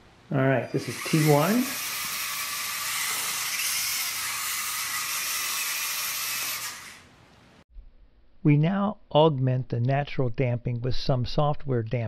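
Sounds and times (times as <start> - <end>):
small electric motors whining: 0.6 - 7.1.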